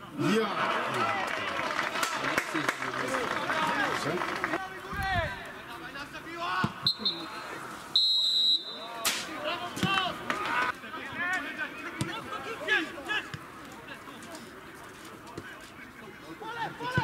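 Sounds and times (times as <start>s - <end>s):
referee's whistle: 6.8s - 9.0s.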